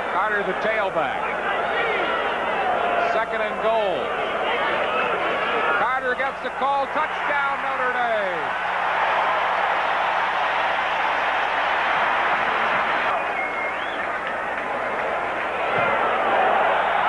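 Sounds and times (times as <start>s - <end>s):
stadium crowd cheering: 0.0s - 17.0s.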